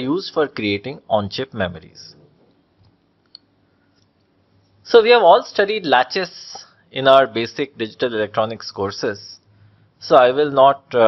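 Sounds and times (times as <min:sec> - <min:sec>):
man speaking: 0:00.0 - 0:02.2, 0:04.8 - 0:09.4, 0:10.0 - 0:11.0.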